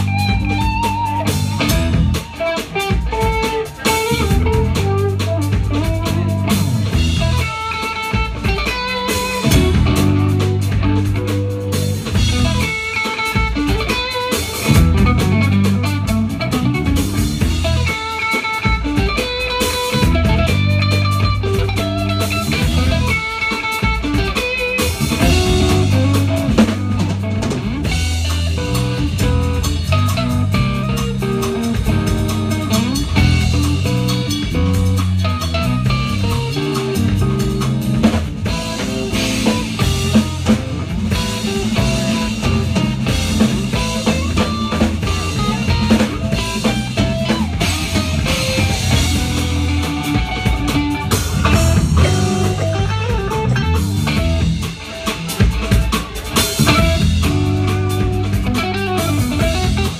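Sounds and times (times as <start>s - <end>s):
amplified electric guitar: 0.0s - 59.9s
drum beat: 0.0s - 59.9s.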